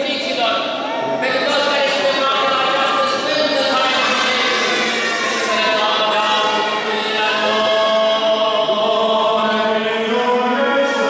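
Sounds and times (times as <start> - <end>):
voices singing liturgical chant: 1.7 - 11.0.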